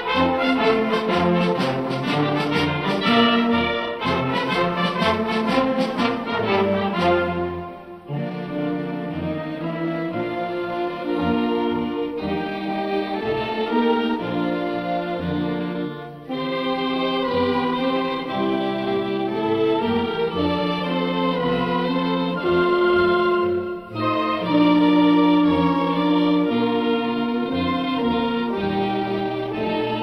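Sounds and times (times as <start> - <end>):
instrumental march music: 0.0 - 30.0.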